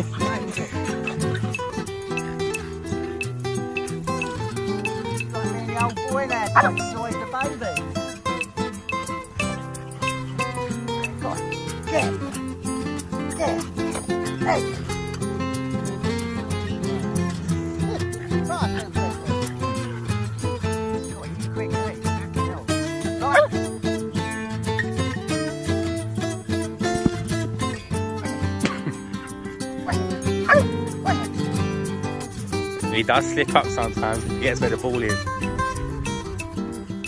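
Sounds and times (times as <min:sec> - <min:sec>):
dogs whining and yipping: 0:00.0 - 0:21.4, 0:22.2 - 0:32.4
background music: 0:00.0 - 0:37.0.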